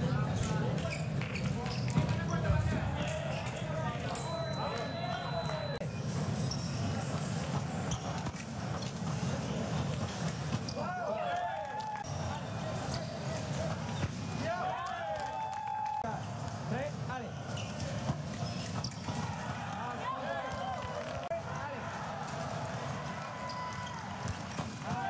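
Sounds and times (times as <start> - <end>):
murmur of voices in a hall: 0.0 - 25.0
shoes squeaking on floor: 0.4 - 11.0, 17.4 - 19.3.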